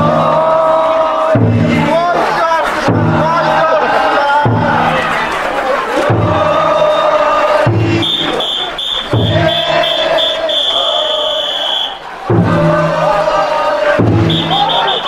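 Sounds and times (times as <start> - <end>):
big drum beaten heavily: 0.0 - 11.1, 12.1 - 15.0
people chanting long calls: 0.0 - 15.0
shrill whistle blowing: 8.0 - 12.0, 14.2 - 15.0.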